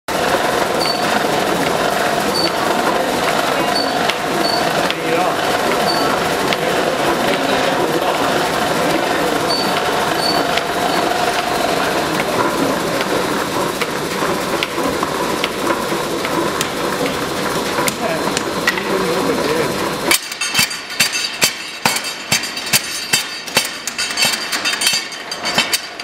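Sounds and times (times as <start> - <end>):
power hammer clatter: 0.1 - 26.0.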